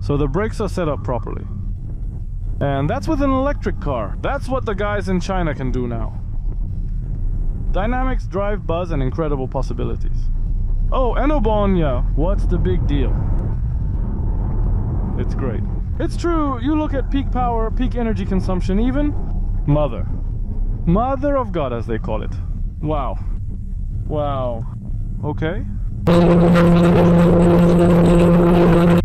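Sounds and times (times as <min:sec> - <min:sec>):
road and wind noise in car cabin: 0:00.0 - 0:26.1
car horn long blast: 0:26.1 - 0:29.0.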